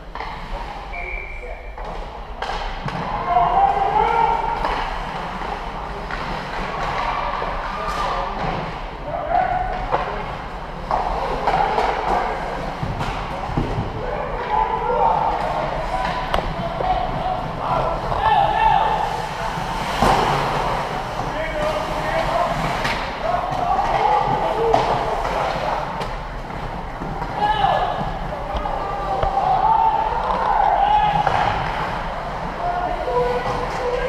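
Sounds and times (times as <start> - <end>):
people shouting and calling out: 2.9 - 4.8, 13.8 - 19.6, 21.2 - 26.0, 27.2 - 34.0
puck and sticks knocking: 4.6 - 14.6, 15.2 - 32.4.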